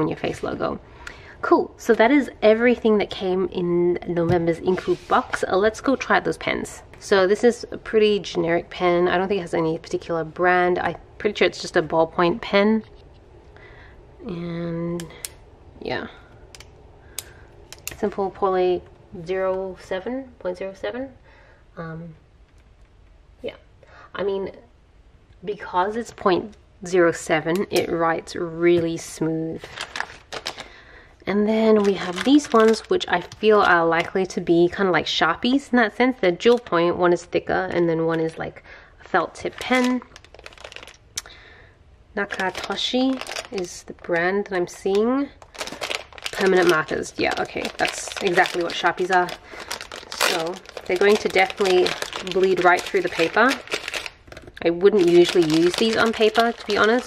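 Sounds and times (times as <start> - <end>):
plastic packaging crinkling: 29.5 - 30.9, 31.6 - 34.2, 39.3 - 41.3, 42.2 - 57.0.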